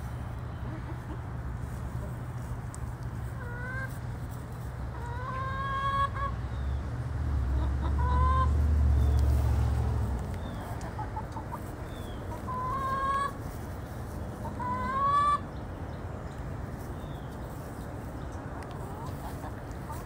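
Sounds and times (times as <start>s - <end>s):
hens calling: 3.2s - 6.4s, 7.5s - 8.6s, 10.2s - 15.7s, 17.2s - 20.0s
soft clucks: 10.2s - 13.4s, 18.5s - 20.0s.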